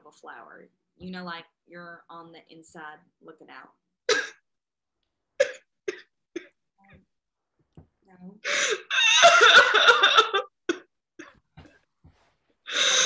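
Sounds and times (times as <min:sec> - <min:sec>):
woman sobbing: 0:08.4 - 0:11.3
wavering crying wail: 0:08.5 - 0:10.5.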